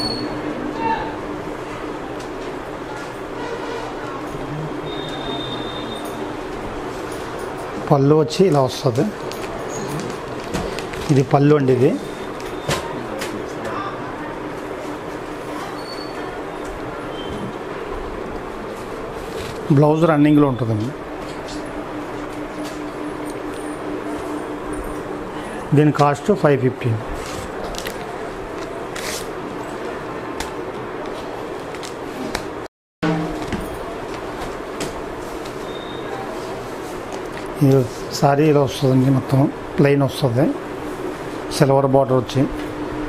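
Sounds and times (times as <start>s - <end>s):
steady background hum: 0.0s - 43.0s.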